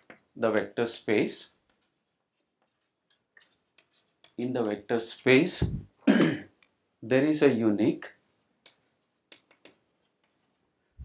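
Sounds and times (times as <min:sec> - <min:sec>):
chalk ticking on blackboard: 0:01.1 - 0:05.4, 0:08.6 - 0:10.7.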